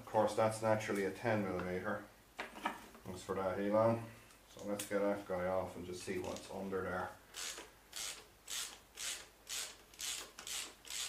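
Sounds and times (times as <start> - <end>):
ratchet wrench rasping: 7.4 - 11.0.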